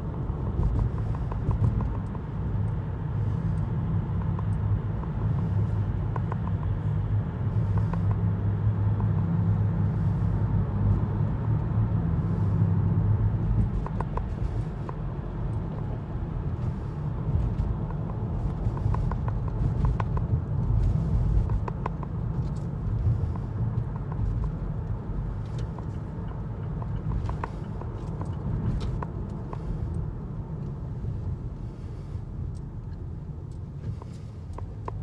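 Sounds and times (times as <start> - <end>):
car road and engine rumble: 0.0 - 35.0.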